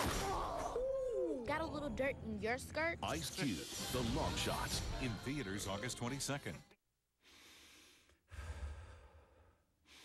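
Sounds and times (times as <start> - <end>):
person breathing slowly: 7.2 - 10.0.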